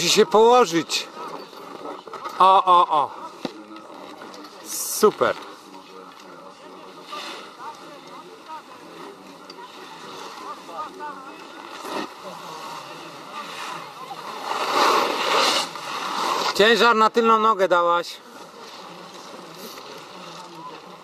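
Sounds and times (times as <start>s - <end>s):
faint distant voices: 0.0s - 21.0s
snowboard sliding on snow: 6.8s - 7.7s, 8.6s - 17.4s.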